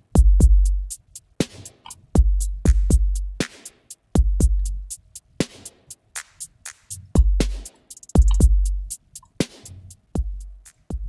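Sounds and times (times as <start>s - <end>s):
hi-hats: 0.0s - 11.0s
booming kick drums: 0.2s - 0.8s, 2.2s - 3.4s, 4.2s - 4.9s, 7.2s - 7.6s, 8.2s - 8.9s, 10.2s - 11.0s
snare or clap hits: 2.7s - 3.8s.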